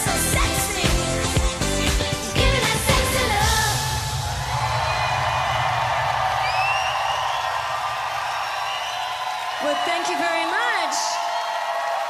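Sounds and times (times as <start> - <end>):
live pop song with female vocal: 0.0 - 4.3
arena crowd cheering and whooping: 3.8 - 12.0.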